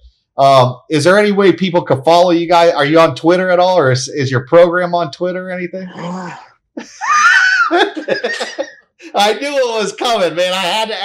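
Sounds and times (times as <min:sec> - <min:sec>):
man's high-pitched wheezy laugh: 0:06.0 - 0:09.2.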